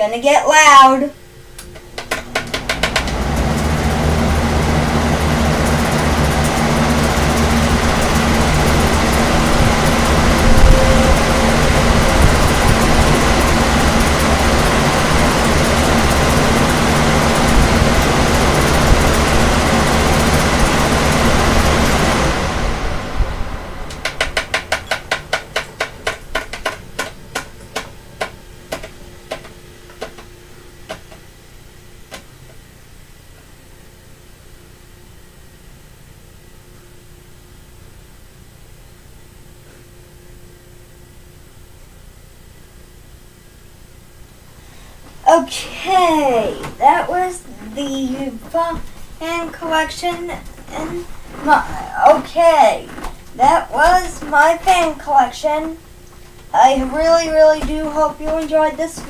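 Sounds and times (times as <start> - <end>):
electric fans blowing air: 0.0 - 59.0
low motor hum: 1.2 - 59.0
ticking of slowing fan blades: 1.4 - 59.0.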